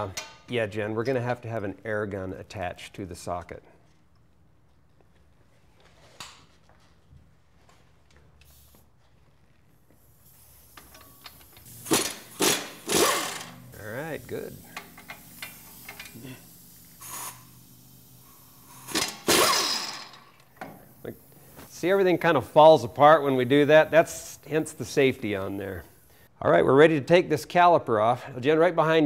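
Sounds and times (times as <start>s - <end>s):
pneumatic impact wrench bursts: 10.0s - 21.9s.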